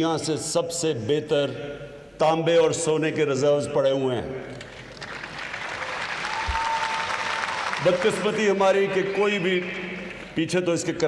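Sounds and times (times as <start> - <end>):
audience applauding: 4.9 - 8.5.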